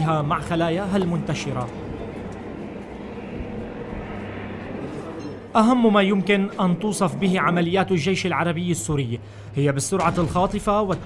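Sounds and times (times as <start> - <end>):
engine drone: 0.0 - 11.0.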